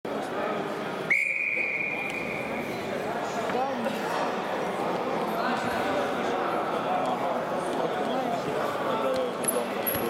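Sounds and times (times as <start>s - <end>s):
referee's whistle blast: 1.1s - 2.4s.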